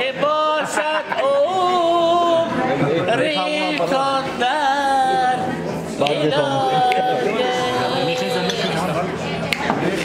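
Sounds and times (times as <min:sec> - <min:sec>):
background voices: 0:00.0 - 0:10.0.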